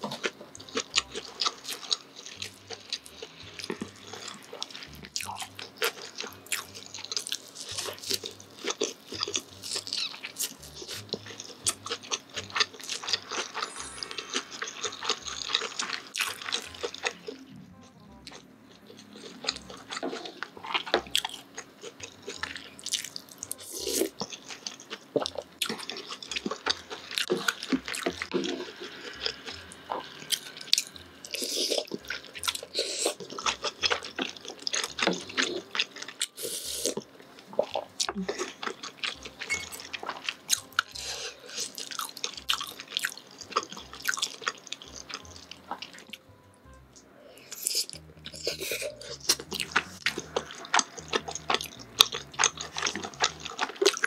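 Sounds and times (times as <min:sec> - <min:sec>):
wet chewing and slurping: 0:00.0 - 0:17.6, 0:18.2 - 0:46.2, 0:47.4 - 0:54.0.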